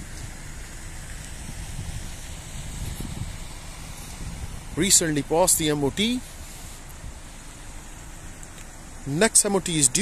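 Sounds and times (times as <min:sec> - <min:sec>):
wind rumble on microphone: 0:00.0 - 0:05.8.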